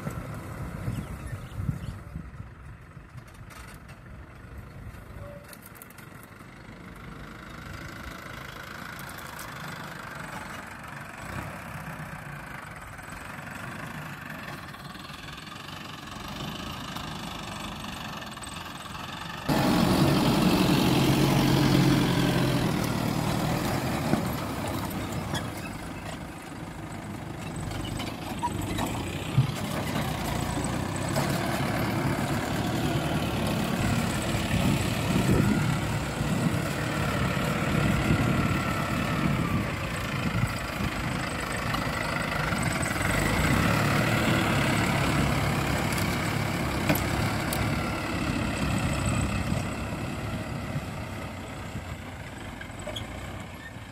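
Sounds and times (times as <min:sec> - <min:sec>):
tractor diesel engine running: 0:00.0 - 0:53.9.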